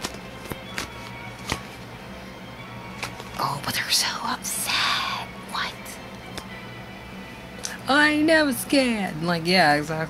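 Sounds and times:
faint background music: 0.0s - 10.0s
person whispering: 3.7s - 5.9s.

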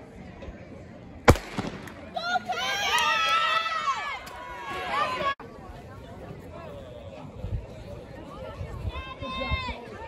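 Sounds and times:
starting pistol crack: 1.3s - 2.1s.

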